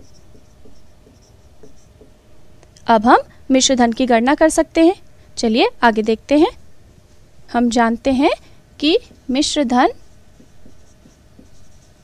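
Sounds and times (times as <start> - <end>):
handwriting scratching: 0.0 - 2.2, 9.9 - 12.0.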